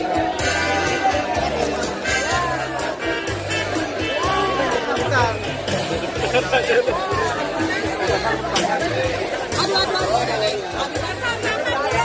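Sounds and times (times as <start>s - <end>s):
crowd chattering: 0.0s - 12.0s
music with steady bass beat: 0.0s - 12.0s.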